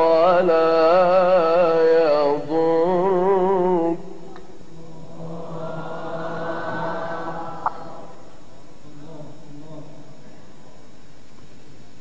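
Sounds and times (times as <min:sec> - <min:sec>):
man chanting: 0:00.0 - 0:08.0.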